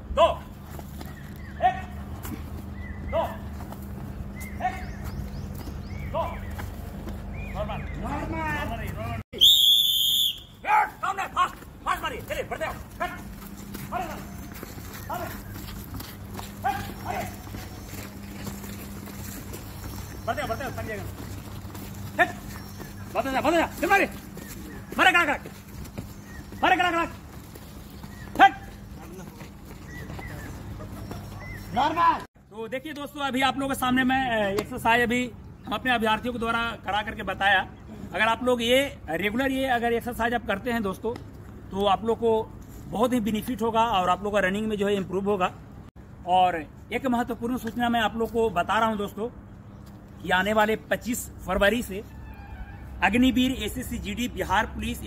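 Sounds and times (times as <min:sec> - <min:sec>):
man shouting a call: 0:00.0 - 0:00.6, 0:01.6 - 0:02.0, 0:03.1 - 0:03.5, 0:04.5 - 0:04.9, 0:07.5 - 0:14.4, 0:16.6 - 0:17.5, 0:22.2 - 0:22.5, 0:23.1 - 0:24.2, 0:24.9 - 0:25.5, 0:26.6 - 0:27.2, 0:28.3 - 0:29.3, 0:31.7 - 0:32.3.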